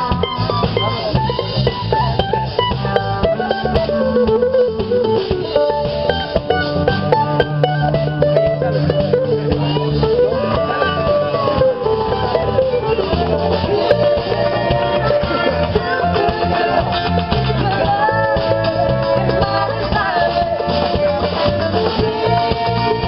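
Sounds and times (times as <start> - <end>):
drum kit: 0.0 - 23.0
electric guitar: 0.0 - 23.0
fiddle: 0.0 - 23.0
mandolin: 0.0 - 23.0.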